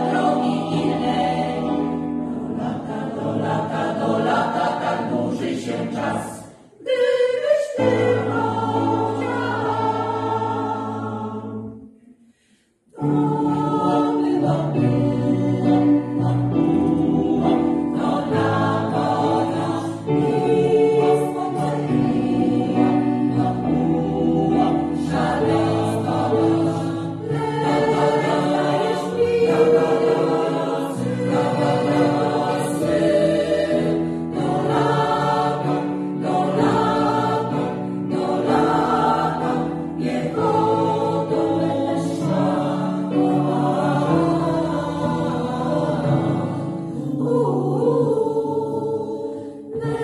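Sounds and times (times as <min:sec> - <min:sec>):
choir singing sustained chords: 0:00.0 - 0:50.0.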